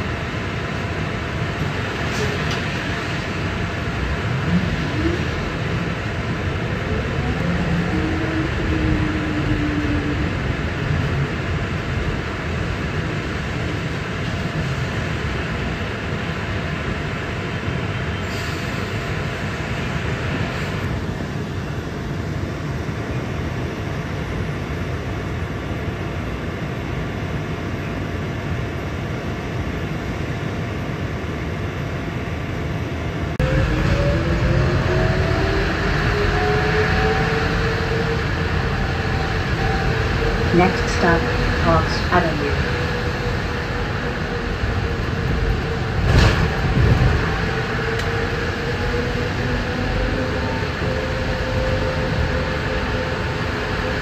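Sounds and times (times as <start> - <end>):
bus ride rumble and hiss: 0.0 - 54.0
rising whine of bus accelerating: 0.0 - 54.0.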